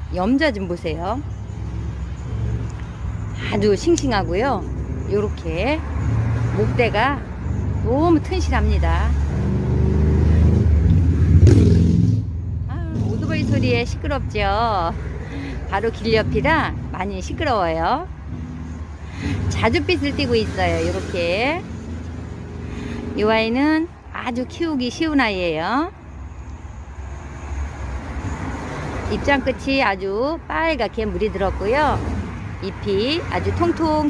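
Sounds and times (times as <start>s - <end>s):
road traffic rumble: 0.0s - 34.0s
motorcycle engine passing: 8.7s - 15.2s.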